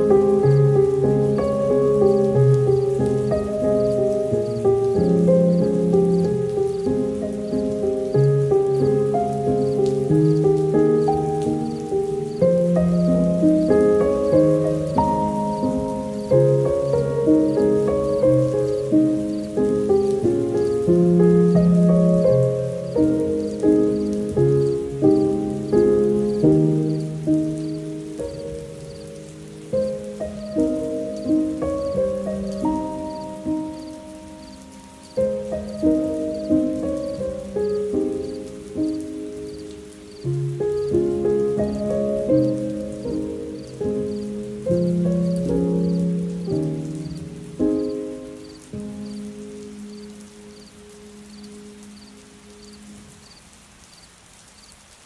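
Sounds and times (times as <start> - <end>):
soft solo piano: 0.0 - 53.5
faint steady hiss: 0.0 - 55.0.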